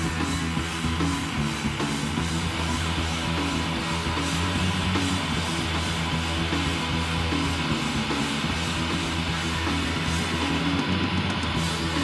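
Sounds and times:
drum kit with cymbals: 0.0s - 12.0s
electric bass: 0.0s - 12.0s
electric guitar: 0.0s - 12.0s
keyboard: 0.0s - 12.0s.

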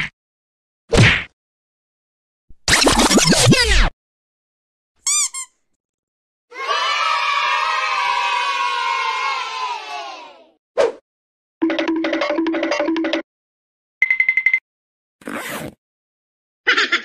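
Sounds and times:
crowd cheering: 6.5s - 10.5s.

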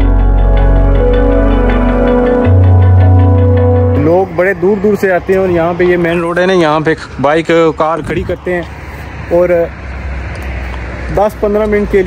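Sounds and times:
vehicle passing on road: 0.0s - 12.0s.

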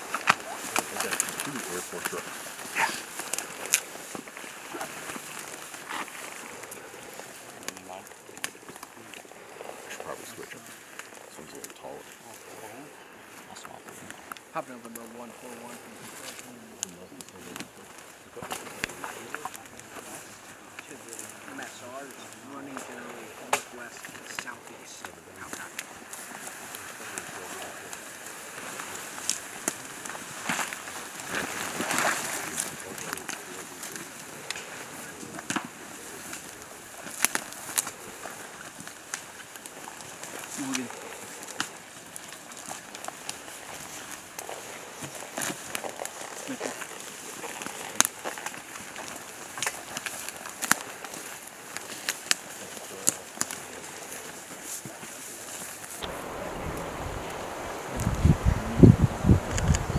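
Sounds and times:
low voices: 0.0s - 37.0s, 40.3s - 41.7s, 56.0s - 59.9s
gear and vegetation rustling: 0.0s - 59.9s.

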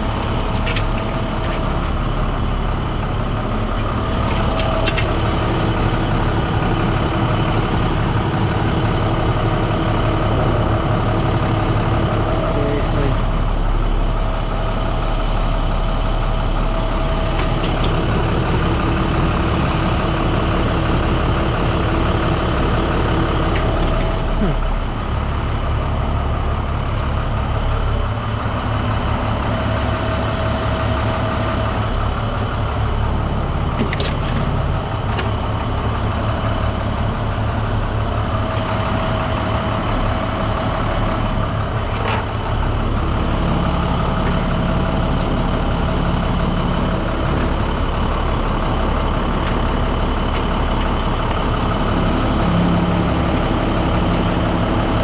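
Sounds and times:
truck engine running: 0.0s - 55.0s.

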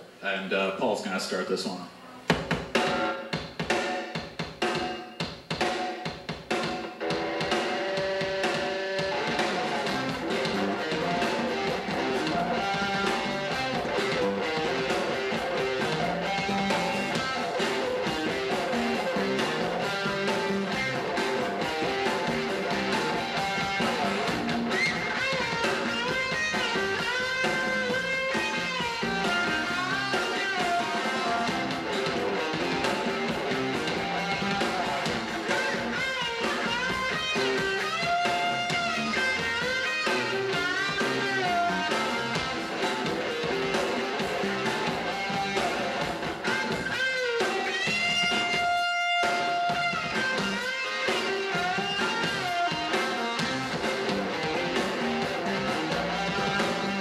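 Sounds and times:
live rock band playing: 2.3s - 57.0s
lead guitar with bending notes: 7.0s - 57.0s.

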